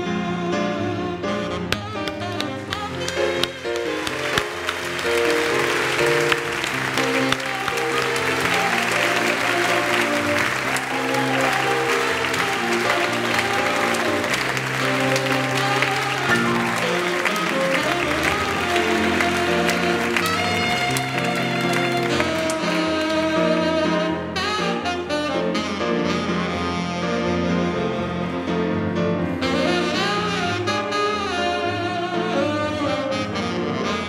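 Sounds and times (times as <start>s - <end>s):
instrumental music: 0.0s - 34.0s
audience applauding: 2.0s - 23.8s.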